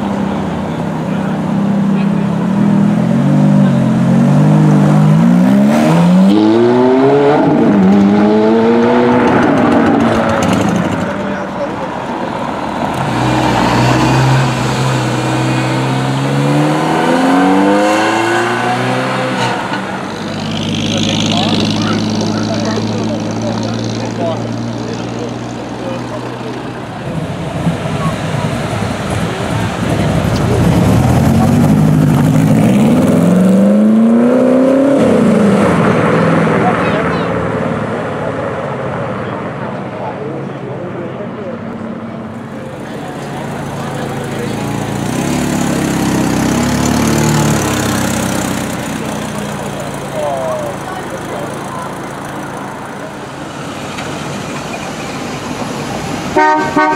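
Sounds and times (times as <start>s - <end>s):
car engines revving: 0.0s - 56.9s
car engine running: 18.7s - 33.5s, 42.2s - 55.7s.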